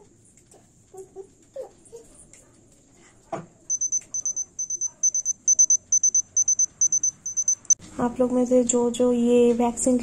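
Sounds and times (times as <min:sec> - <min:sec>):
thermometer beeping rapidly: 0:03.7 - 0:07.8.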